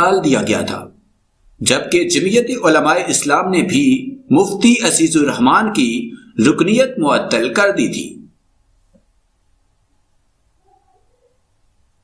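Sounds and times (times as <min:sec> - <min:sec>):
faint low hum: 0:08.2 - 0:12.0.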